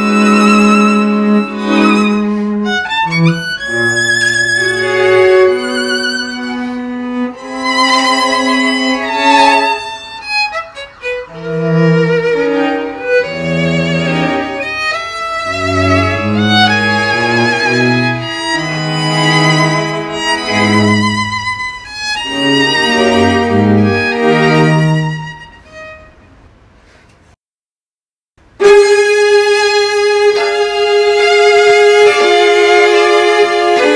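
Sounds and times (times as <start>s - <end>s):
cello low notes: 0.0s - 26.2s, 28.6s - 33.9s
string quartet playing: 0.0s - 26.3s, 28.5s - 33.9s.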